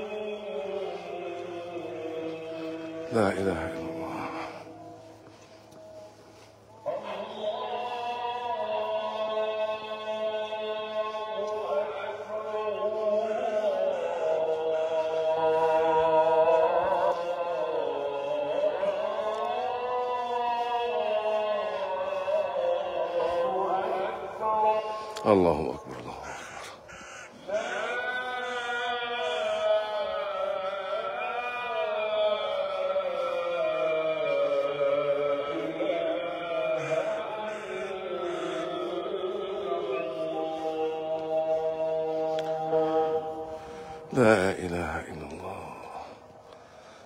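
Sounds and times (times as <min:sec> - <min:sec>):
call to prayer over loudspeakers: 0:00.0 - 0:47.0.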